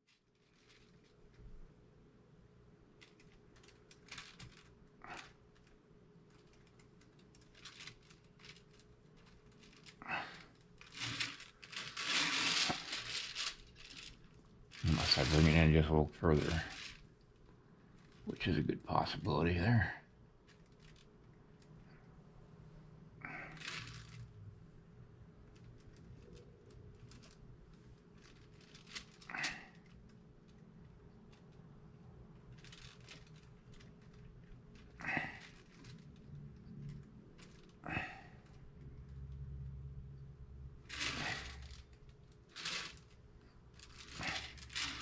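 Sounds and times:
low room hum: 0:00.0 - 0:45.0.

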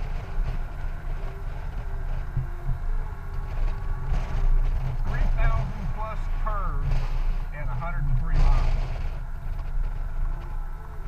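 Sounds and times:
motorcycle road noise rumble: 0:00.0 - 0:11.0
wind buffeting microphone: 0:00.0 - 0:11.0
person talking: 0:07.5 - 0:08.8.

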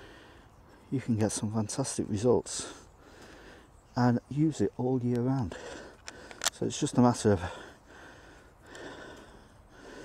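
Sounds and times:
man breathing: 0:00.0 - 0:00.9, 0:02.5 - 0:03.9, 0:05.4 - 0:06.6, 0:07.3 - 0:10.0.

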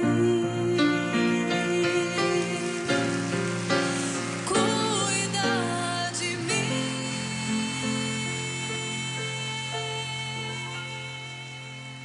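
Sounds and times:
instrumental accompaniment: 0:00.0 - 0:12.0
woman singing ballad: 0:00.0 - 0:12.0.

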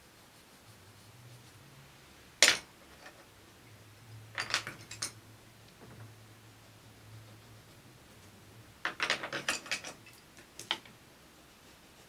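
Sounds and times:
pencils clicking on a hard desk: 0:08.8 - 0:11.0.

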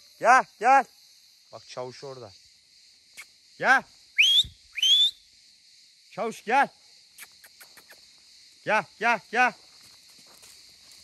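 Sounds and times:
high-pitched hiss: 0:00.0 - 0:11.0
man calling a dog: 0:03.6 - 0:03.9, 0:08.6 - 0:09.6.

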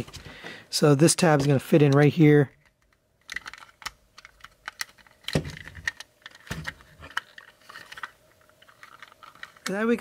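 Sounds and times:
plastic toy parts clicking: 0:01.4 - 0:10.0.

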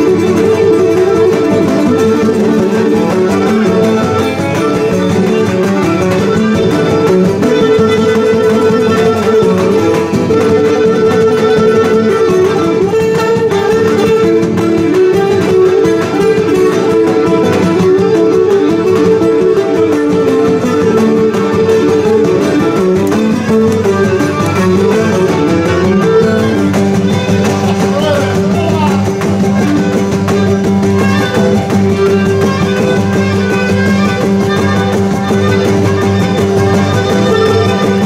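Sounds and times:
bowed string instrument melody: 0:00.0 - 0:38.0
strummed lutes: 0:00.0 - 0:38.0.

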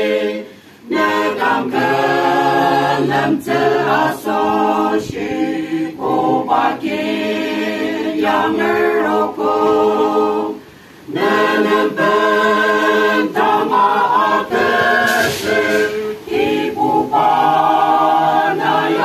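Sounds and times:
choir singing unaccompanied: 0:00.0 - 0:19.0.

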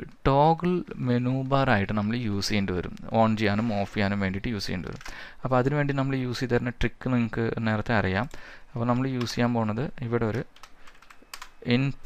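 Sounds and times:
computer keyboard key clicks: 0:10.5 - 0:11.6.

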